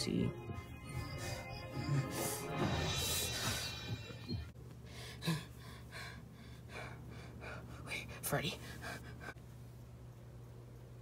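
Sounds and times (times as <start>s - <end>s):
person gasping: 4.9s - 7.7s.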